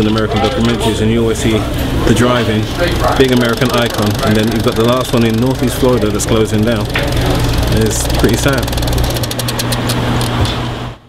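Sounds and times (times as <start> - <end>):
car engines idling: 0.0 - 10.3.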